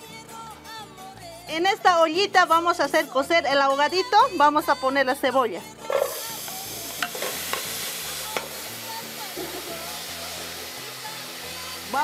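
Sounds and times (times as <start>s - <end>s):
spoon knocking: 5.9s - 7.7s, 9.4s - 9.9s
wooden spoon scraping: 5.9s - 7.7s.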